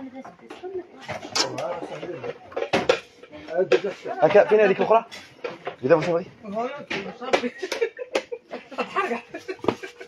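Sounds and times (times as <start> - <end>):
kitchenware clattering: 1.1 - 4.0.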